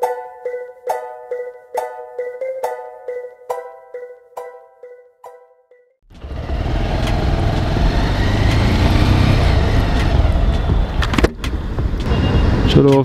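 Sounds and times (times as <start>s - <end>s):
motorcycle engine rumble: 6.1s - 12.7s.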